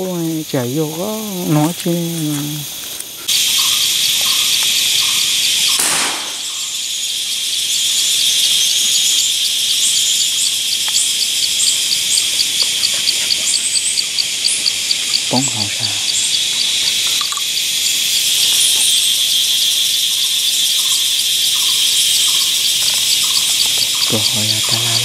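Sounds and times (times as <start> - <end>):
fast pulsing insect chirp: 0.0 - 25.0
insects chirring: 0.0 - 25.0
bird chirps: 0.1 - 25.0.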